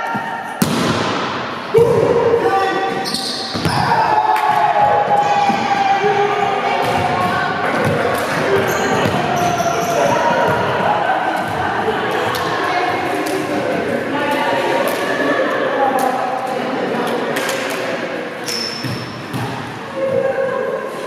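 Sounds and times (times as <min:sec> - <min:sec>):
volleyball smack echoing: 0:00.6 - 0:01.4.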